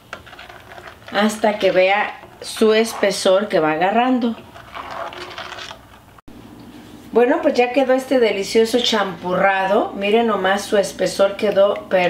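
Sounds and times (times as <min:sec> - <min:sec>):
spatula scraping metal pot: 0:00.0 - 0:06.1.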